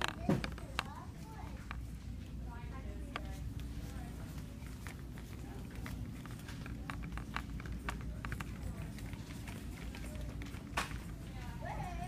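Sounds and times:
low rumble of phone handling: 0.0s - 2.1s, 3.0s - 11.2s.

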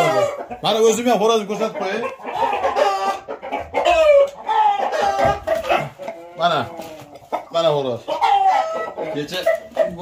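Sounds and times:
roosters crowing and clucking: 0.0s - 10.0s.

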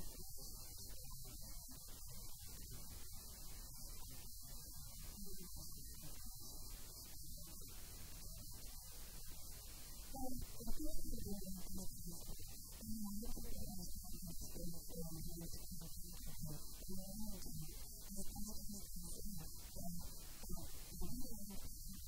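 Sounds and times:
low electrical hum: 10.1s - 22.0s
woman talking into a microphone: 10.1s - 22.0s.

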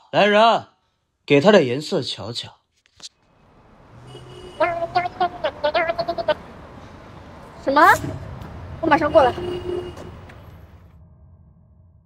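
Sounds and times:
woman speaking: 7.6s - 8.0s, 8.8s - 9.5s.

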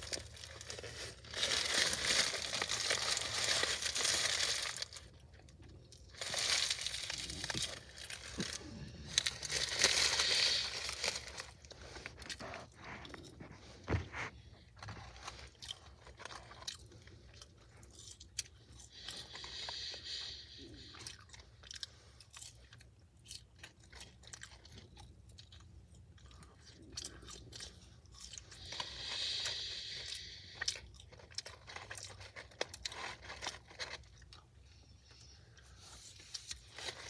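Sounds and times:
chewing and crunching food: 0.0s - 37.0s.

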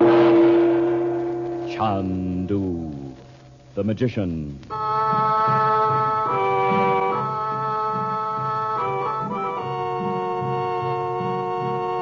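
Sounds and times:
struck musical tone: 0.0s - 3.4s
man announcing: 1.7s - 3.2s, 3.8s - 4.7s.

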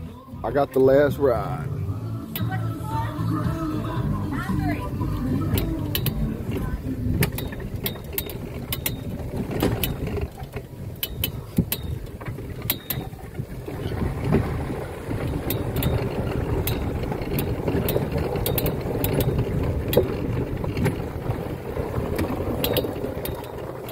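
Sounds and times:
cart engine rumble: 0.0s - 23.9s
tyres rolling over gravel: 0.0s - 23.9s
rattling clicks and knocks: 4.4s - 23.9s.

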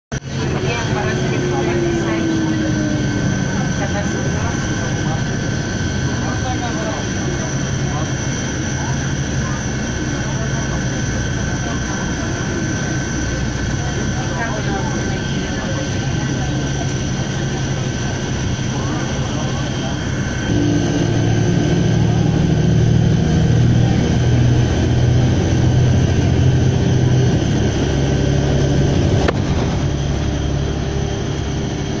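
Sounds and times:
engine drone with high whine: 0.1s - 32.0s
faint voices: 0.2s - 32.0s.

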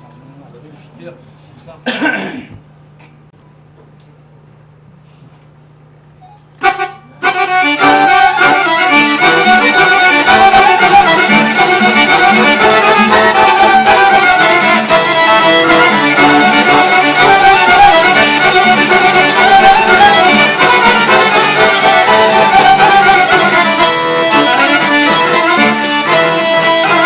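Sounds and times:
folk ensemble playing: 6.6s - 27.0s.

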